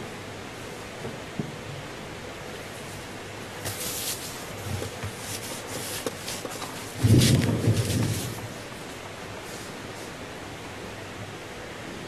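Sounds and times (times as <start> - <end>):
scratchy rustling and rubbing: 2.8 - 10.2.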